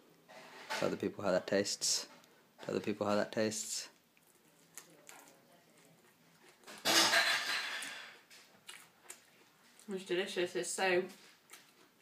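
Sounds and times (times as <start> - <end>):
quiet chewing: 3.9 - 6.9, 7.5 - 10.4, 11.1 - 12.0
woman speaking: 9.9 - 11.2.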